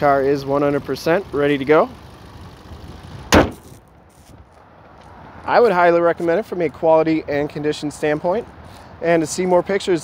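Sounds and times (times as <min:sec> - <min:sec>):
car engine idling: 0:00.0 - 0:03.7
car hood slamming shut: 0:03.3 - 0:03.8.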